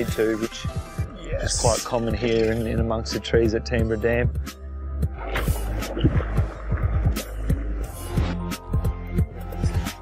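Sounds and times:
music with bass kicks and percussion: 0.0 - 10.0.

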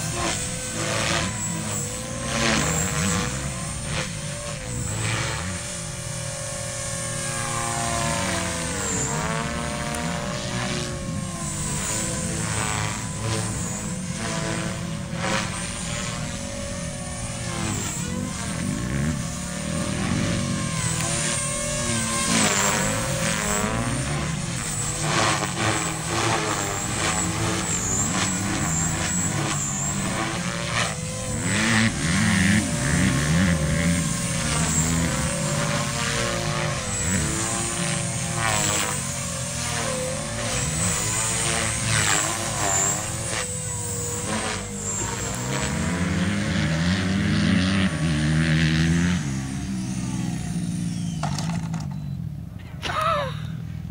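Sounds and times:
rotor blades whooshing: 0.0 - 52.8
electric motor whine: 0.0 - 53.9.

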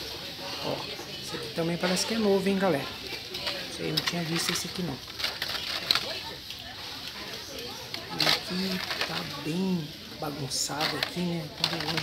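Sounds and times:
murmur of voices: 0.0 - 12.0
plastic packs clicking and rustling: 1.7 - 12.0.

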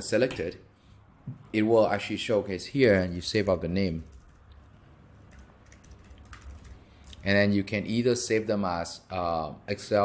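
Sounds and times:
computer keyboard typing: 4.0 - 4.6, 5.2 - 7.2.

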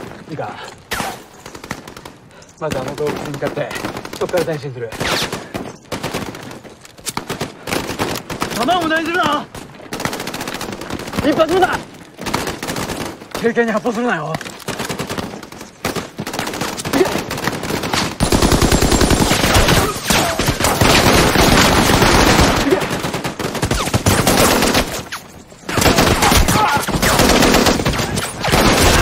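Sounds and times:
heavy gunfire: 14.8 - 24.9, 25.7 - 29.0.

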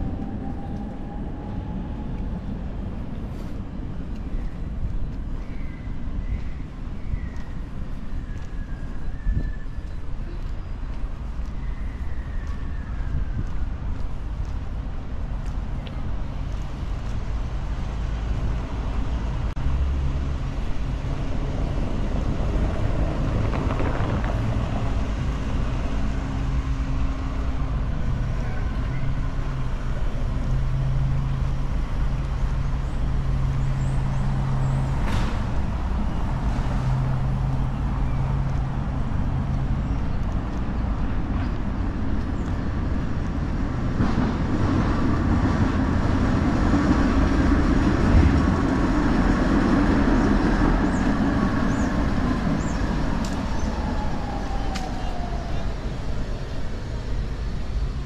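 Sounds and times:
road traffic rumble: 0.0 - 58.0.

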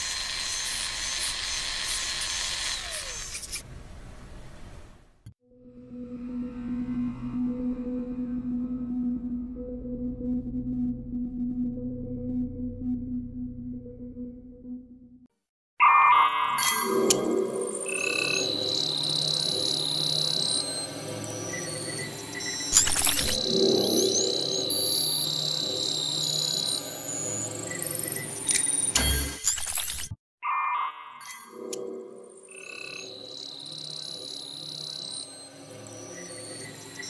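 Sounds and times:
electronic synth ident music: 5.9 - 15.3.

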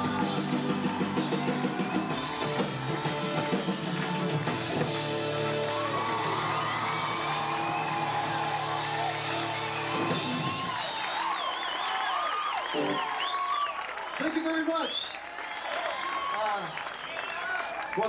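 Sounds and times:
rock band held chord: 0.0 - 11.0
crowd cheering and whistling: 0.0 - 18.0.

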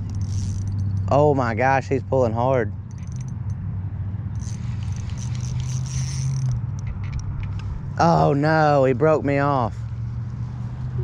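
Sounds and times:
fishing reel buzzing and clicking: 0.0 - 1.1, 2.8 - 3.6, 4.3 - 7.6.

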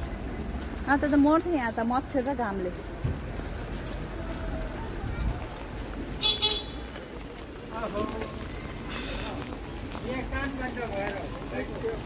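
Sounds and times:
street noise: 0.0 - 12.0
people talking: 0.9 - 2.9, 3.9 - 6.0
vehicle horn tooting: 6.2 - 6.9.

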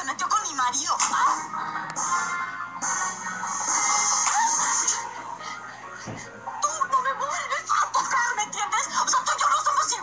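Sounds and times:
woman's voice: 0.0 - 1.4, 6.6 - 10.0
background music: 0.0 - 10.0.

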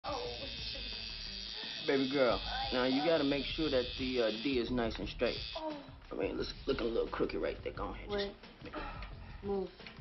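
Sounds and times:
tattoo machine buzzing: 0.0 - 7.4.

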